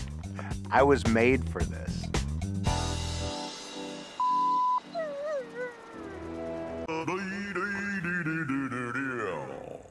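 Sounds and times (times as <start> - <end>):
background music: 0.0 - 9.0
dog whining: 4.6 - 6.7.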